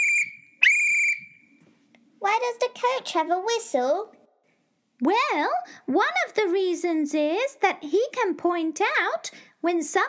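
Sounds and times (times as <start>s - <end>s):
whistle blasts: 0.0s - 1.6s.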